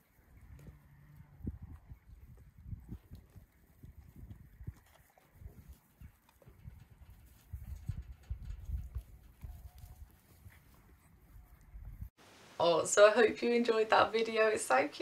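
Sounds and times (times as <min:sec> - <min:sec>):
wind buffeting microphone: 0:00.4 - 0:12.1
faint clicks and rustles: 0:03.0 - 0:12.0.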